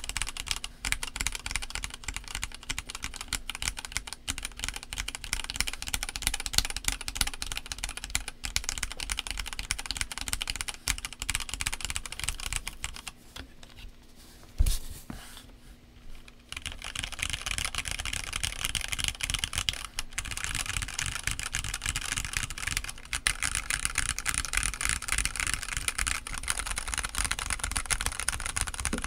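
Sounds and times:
typing on mechanical keyboard: 0:00.0 - 0:13.1, 0:16.5 - 0:29.0.

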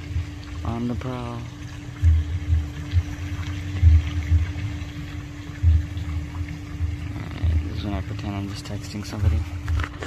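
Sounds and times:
fountain jets splashing on water: 0:00.0 - 0:10.0
steady low hum: 0:00.0 - 0:10.0
low dull thumps: 0:01.6 - 0:07.8.

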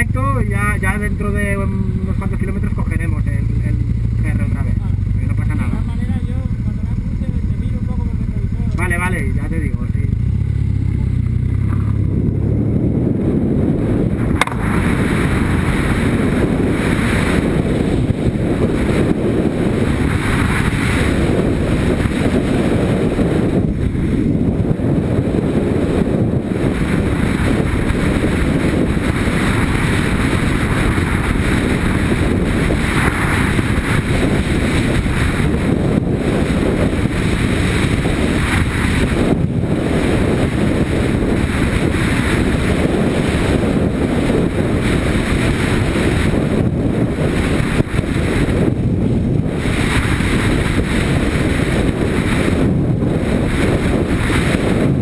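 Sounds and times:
motorcycle engine idling and pulling away: 0:00.0 - 0:46.3
wind noise on microphone: 0:00.0 - 0:55.0.

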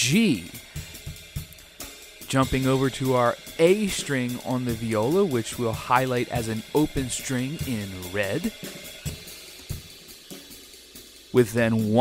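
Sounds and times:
hi-hat and cymbal beat: 0:00.0 - 0:12.0.

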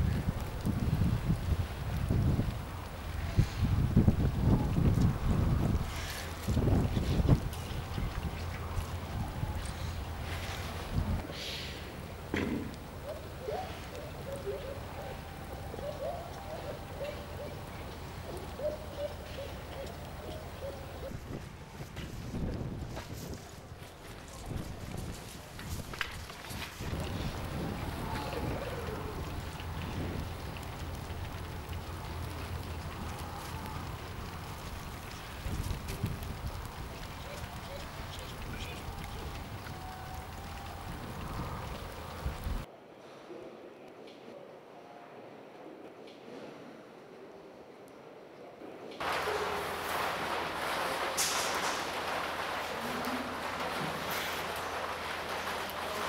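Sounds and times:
wind buffeting microphone: 0:00.0 - 0:11.3, 0:15.8 - 0:42.7
rushing hiss: 0:09.8 - 0:12.0, 0:49.0 - 0:56.0.

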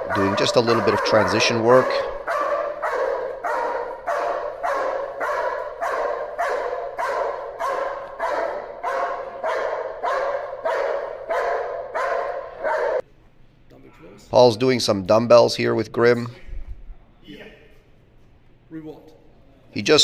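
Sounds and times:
dog barking: 0:00.0 - 0:13.0.

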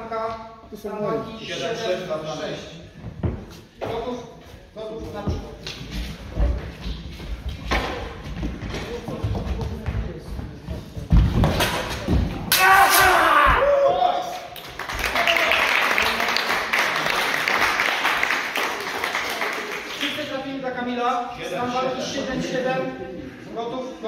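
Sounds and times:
sabres clashing: 0:11.5 - 0:13.4
person shouting: 0:12.5 - 0:14.2.

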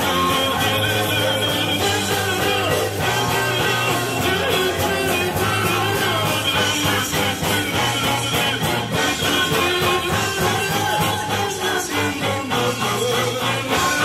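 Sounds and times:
live rock band playing: 0:00.0 - 0:14.0.

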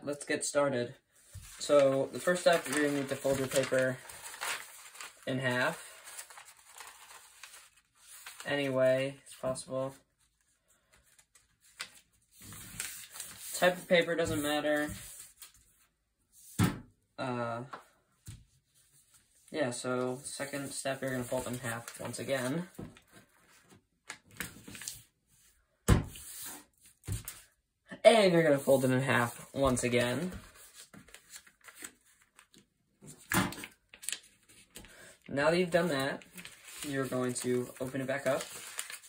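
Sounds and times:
paper being folded and creased: 0:01.2 - 0:15.8, 0:20.2 - 0:25.2, 0:28.4 - 0:34.9, 0:35.6 - 0:39.0
paper thumping on tabletop: 0:25.9 - 0:26.3, 0:27.0 - 0:27.4.

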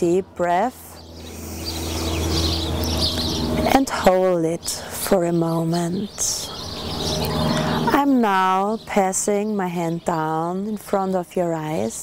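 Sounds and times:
birds chirping: 0:00.0 - 0:12.0
steady low hum: 0:00.0 - 0:12.0
rushing noise: 0:01.2 - 0:03.6.

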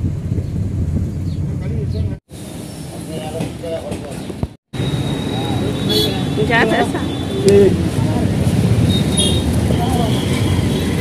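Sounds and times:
traffic rumble: 0:00.0 - 0:11.0
voices of passers-by: 0:01.6 - 0:11.0.

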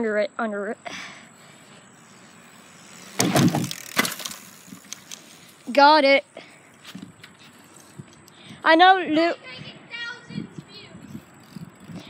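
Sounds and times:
bicycle tyre noise: 0:00.8 - 0:12.0
bicycle landing clatter and thump: 0:03.1 - 0:05.4.

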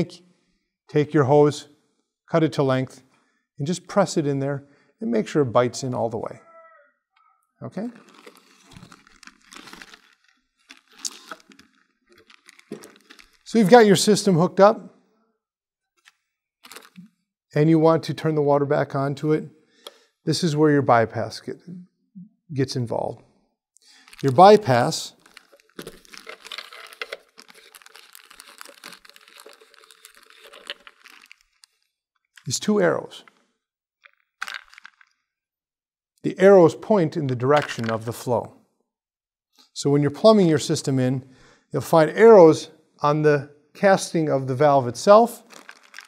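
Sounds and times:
plastic bag rustling: 0:07.8 - 0:13.6, 0:16.6 - 0:17.0, 0:24.0 - 0:31.8, 0:34.1 - 0:35.1, 0:45.4 - 0:46.0.

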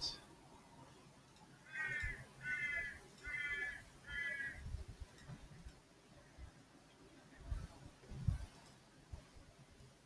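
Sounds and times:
bird calling: 0:01.6 - 0:04.7.

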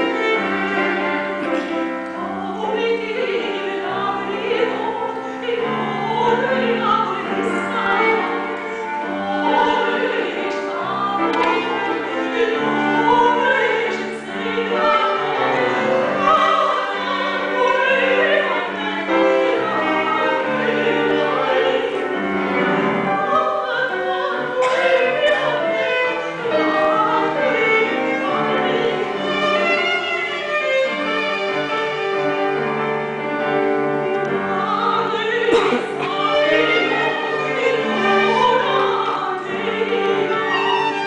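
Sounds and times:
soprano singing with vibrato: 0:00.0 - 0:32.2, 0:34.2 - 0:41.0
grand piano: 0:00.0 - 0:41.0
violin: 0:00.0 - 0:41.0.

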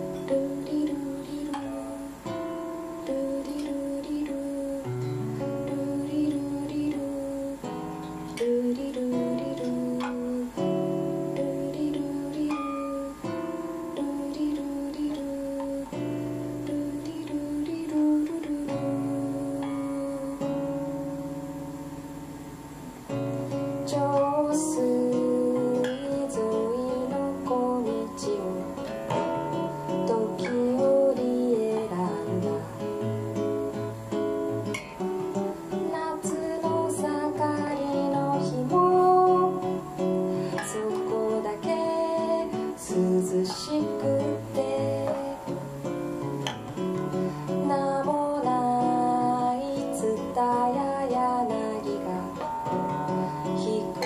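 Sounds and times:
woman singing: 0:00.0 - 0:21.8, 0:23.5 - 0:54.0
classical guitar fingerstyle: 0:00.0 - 0:54.0.

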